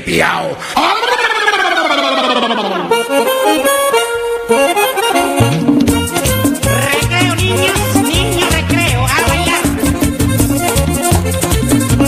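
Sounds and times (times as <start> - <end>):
person shouting: 0.8 - 2.9
button accordion playing: 2.3 - 12.0
light percussion: 5.0 - 12.0.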